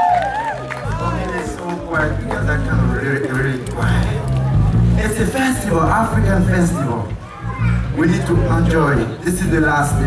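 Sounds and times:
amplified music with heavy bass: 0.1 - 10.0.

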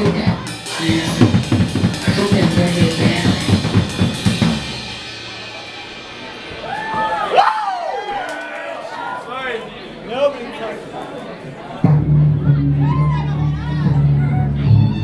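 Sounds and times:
drum kit hitting hard: 0.0 - 7.4
live band playing loud: 0.0 - 8.4, 11.8 - 15.0.

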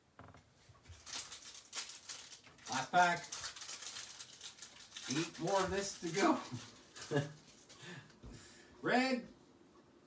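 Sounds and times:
card pack wrapper crinkling and tearing: 0.9 - 7.8.

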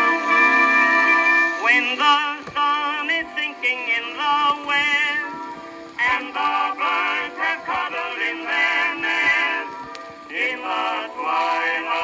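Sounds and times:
orchestral accompaniment: 0.0 - 4.0
male vocal quartet singing: 0.0 - 12.0.

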